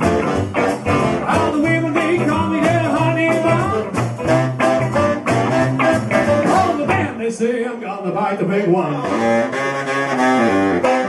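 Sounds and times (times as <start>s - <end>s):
saxophone: 0.0s - 7.0s, 9.0s - 11.0s
electric guitar: 0.0s - 7.2s, 8.9s - 11.0s
upright double bass: 0.0s - 7.2s, 8.9s - 11.0s
drums: 0.0s - 7.4s.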